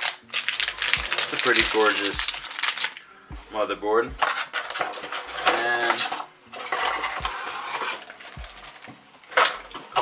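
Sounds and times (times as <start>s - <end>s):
plastic packaging crinkling: 0.0s - 3.0s.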